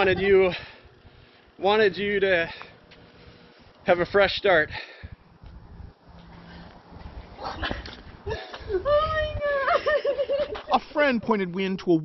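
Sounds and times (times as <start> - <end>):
woman crying: 7.4 - 10.6.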